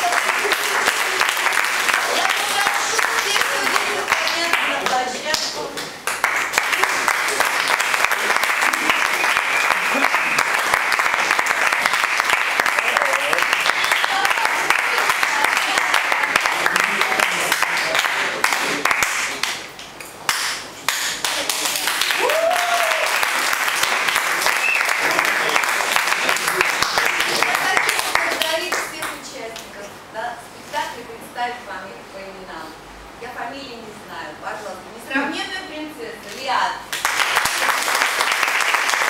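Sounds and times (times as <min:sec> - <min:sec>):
audience applauding: 0:00.0 - 0:19.7, 0:20.3 - 0:29.2, 0:36.9 - 0:39.0.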